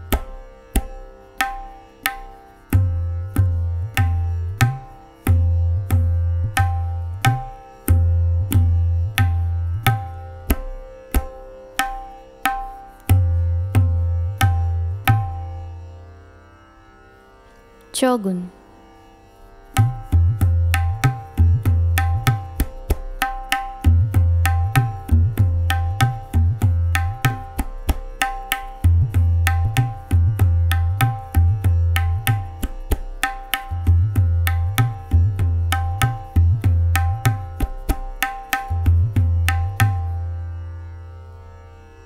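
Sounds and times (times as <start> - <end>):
fast tabla strokes: 0.0 - 15.6, 19.8 - 40.2.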